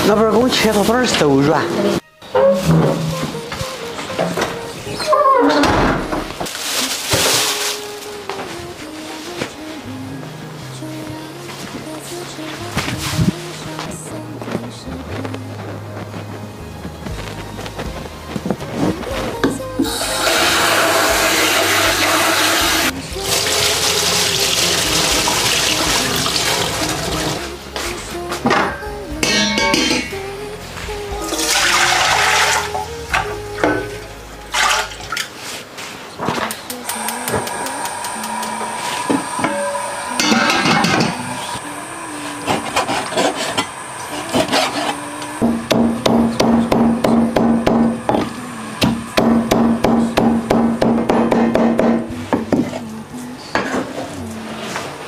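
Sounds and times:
background music: 0.0 - 55.0
tap water running into scoop: 19.8 - 27.4, 31.4 - 32.8.

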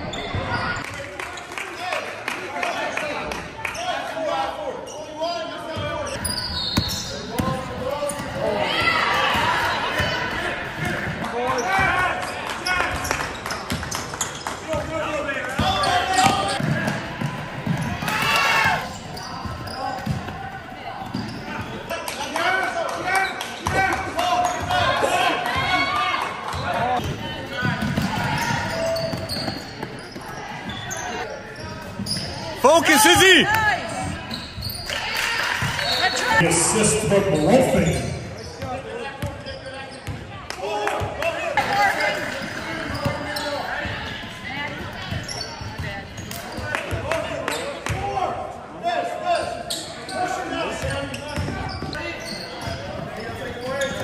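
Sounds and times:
voices in echoing gym: 0.0 - 54.0
basketball bouncing on wood floor: 19.4 - 20.4.

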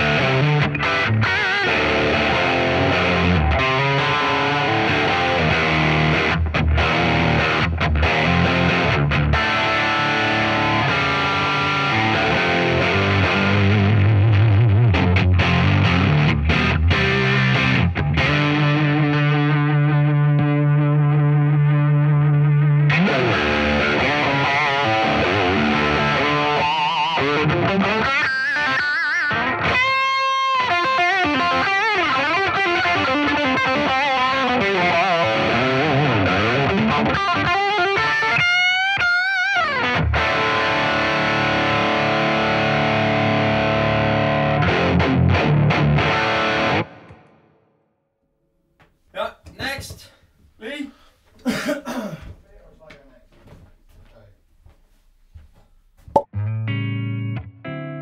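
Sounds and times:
distorted electric guitar: 0.0 - 47.6, 56.1 - 58.0.

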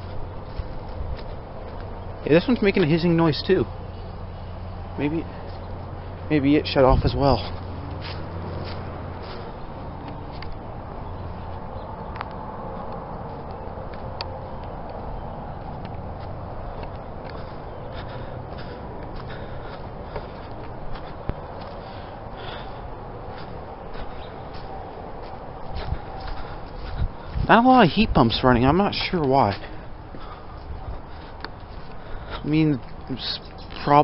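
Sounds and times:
footsteps through grass and leaves: 0.0 - 34.0
outdoor background noise: 0.0 - 34.0.

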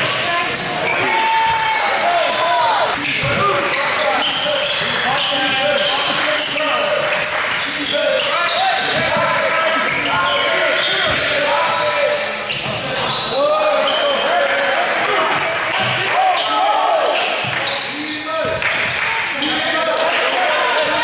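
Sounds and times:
sneakers squeaking: 0.0 - 21.0
voices echoing in a hall: 0.0 - 21.0.

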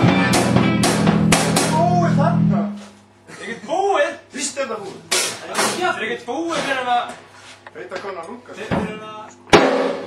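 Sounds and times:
sharp knock: 9.5 - 10.0.

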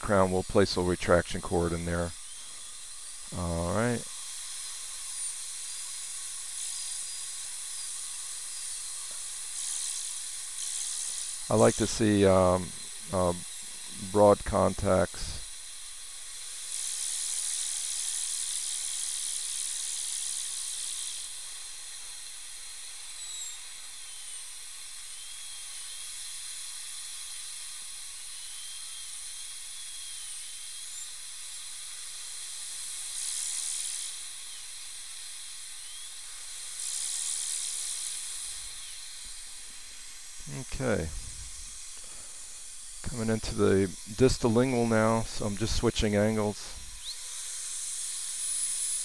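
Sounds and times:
dental drill air and water hiss: 0.0 - 49.0
faint wavering whine: 0.0 - 49.0
suction hiss: 0.0 - 49.0.

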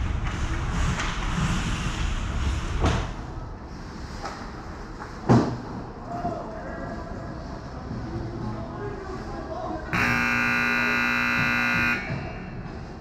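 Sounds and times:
voices in arena: 5.8 - 13.0
arena horn blast: 9.9 - 12.3.

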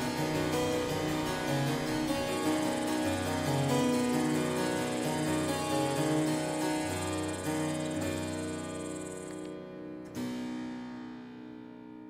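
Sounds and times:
baroque harpsichord music: 0.0 - 11.7.

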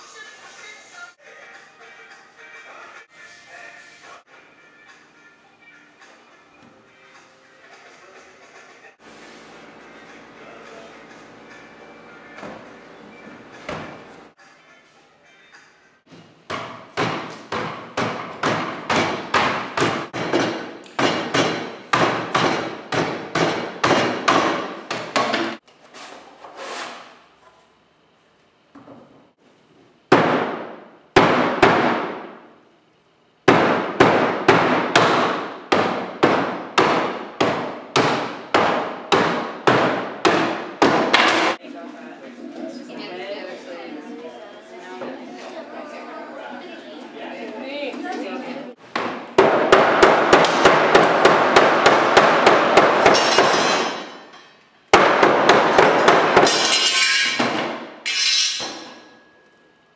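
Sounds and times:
hammer beating on wood: 16.5 - 25.6, 30.1 - 32.3, 33.5 - 41.6, 48.9 - 54.1, 54.9 - 56.6.

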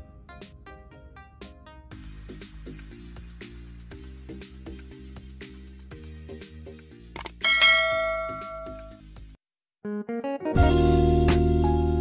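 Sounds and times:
bright bell ding: 7.4 - 9.0.

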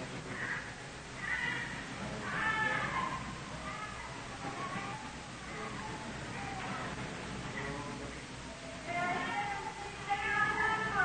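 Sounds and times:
steady hum: 0.0 - 11.0
distant high-pitched voice: 0.2 - 7.0.

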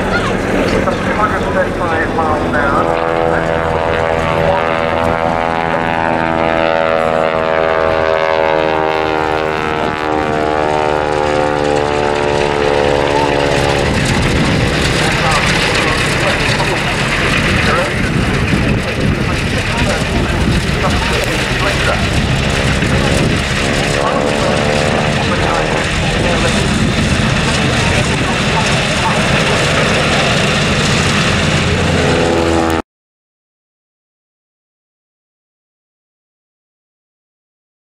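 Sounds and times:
propeller plane engine droning: 0.0 - 32.8.

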